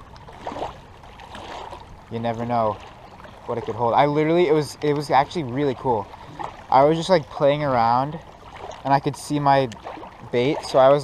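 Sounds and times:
water lapping on rocky shore: 0.0 - 11.0.

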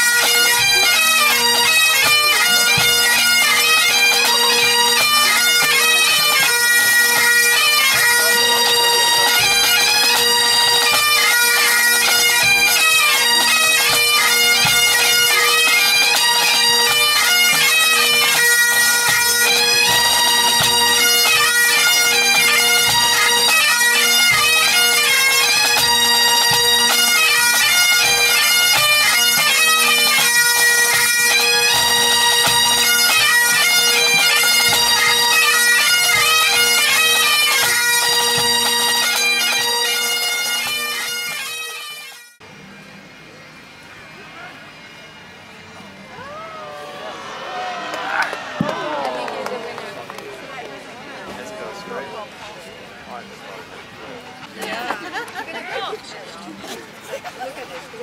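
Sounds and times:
bagpipes playing: 0.0 - 42.4, 43.9 - 53.0.

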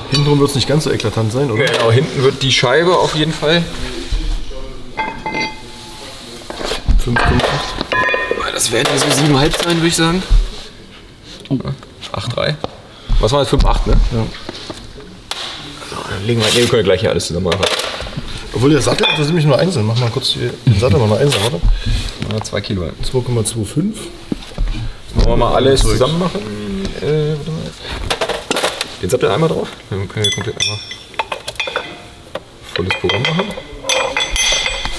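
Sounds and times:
metal clinks and knocks: 5.0 - 9.8, 30.2 - 34.9.

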